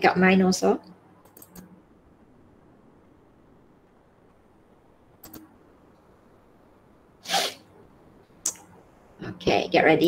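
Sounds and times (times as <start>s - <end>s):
mouse clicks: 5.2s - 5.5s
person sneezing: 7.2s - 7.6s.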